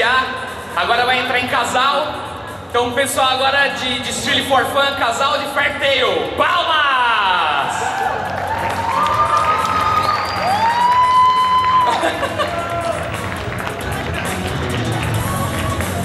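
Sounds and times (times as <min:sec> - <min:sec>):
music with voices over speakers: 0:00.0 - 0:16.0
audience cheering: 0:07.6 - 0:16.0.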